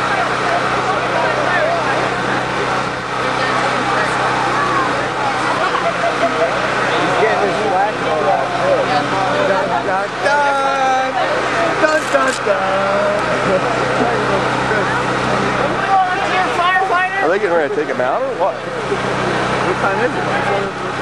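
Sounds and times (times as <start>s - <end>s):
overlapping chatter of people: 0.0s - 21.0s
steady low hum: 0.0s - 21.0s.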